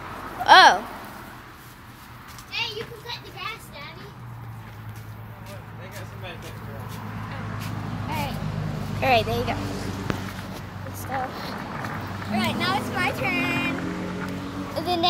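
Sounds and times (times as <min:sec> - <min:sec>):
child vocal sounds: 0:00.4 - 0:00.9.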